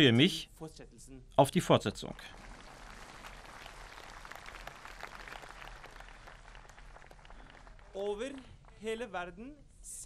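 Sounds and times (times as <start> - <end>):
crowd applauding: 2.2 - 8.8.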